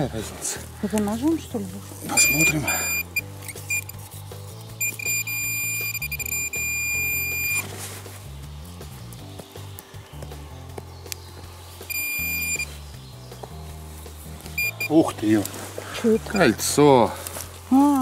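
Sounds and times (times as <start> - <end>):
background music bass line: 1.2 - 16.8
metal detector high tone: 2.1 - 3.9, 4.8 - 7.6, 11.9 - 12.7, 14.6 - 15.0.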